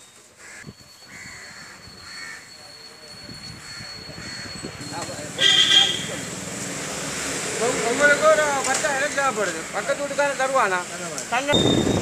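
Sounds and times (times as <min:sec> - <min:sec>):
street noise: 0:00.0 - 0:12.0
vehicle horn honk: 0:05.4 - 0:06.2.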